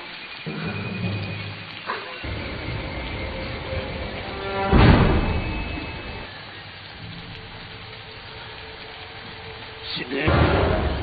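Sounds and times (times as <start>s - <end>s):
heavy rain on a street: 0.0s - 11.0s.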